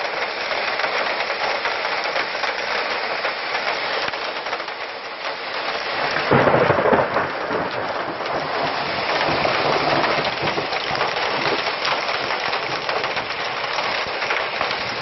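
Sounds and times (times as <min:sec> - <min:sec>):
hailstones striking hard surfaces: 0:00.0 - 0:15.0
heavy rain pelting down: 0:00.0 - 0:15.0.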